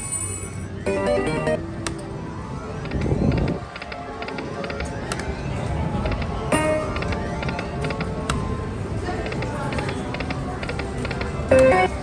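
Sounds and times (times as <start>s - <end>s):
slot machine game music: 0.8s - 1.8s, 11.5s - 12.0s.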